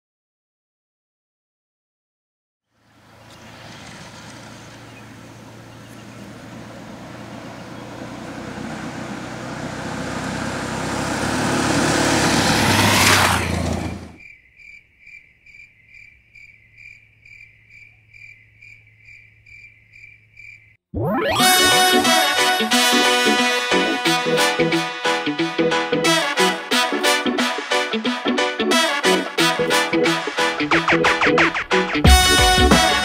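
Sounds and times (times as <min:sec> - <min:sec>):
vehicle passing on dirt road: 0:02.7 - 0:14.2
insect chirping: 0:14.2 - 0:20.8.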